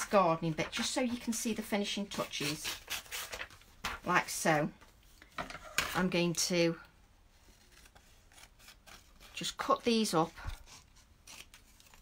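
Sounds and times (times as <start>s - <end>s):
paper rustling: 2.1s - 4.4s.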